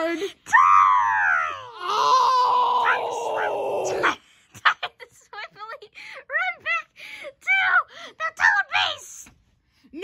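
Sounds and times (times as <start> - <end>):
boy wailing: 0.5 - 4.2.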